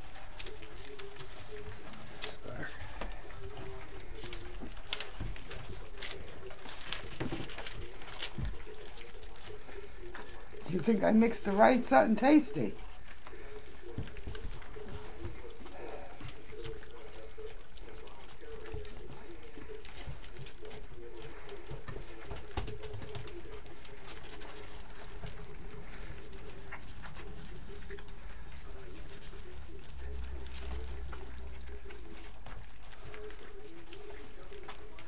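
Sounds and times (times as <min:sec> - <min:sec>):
wet lapping and smacking: 0:12.8 - 0:35.0.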